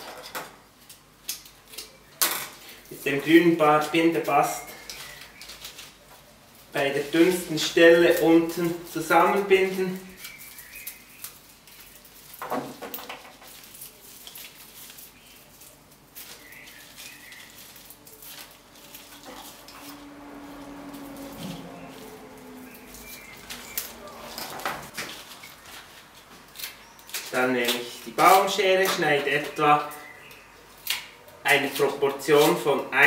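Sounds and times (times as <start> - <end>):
flower stems rustling: 2.6 - 33.0.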